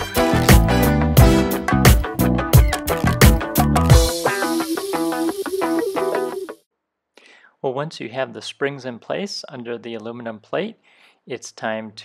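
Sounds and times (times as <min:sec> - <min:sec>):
riff of repeated pitched notes: 0:00.0 - 0:06.6.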